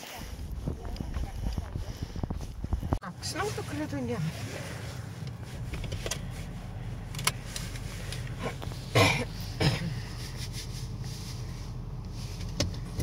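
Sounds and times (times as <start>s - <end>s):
car cabin low rumble: 0.0s - 13.0s.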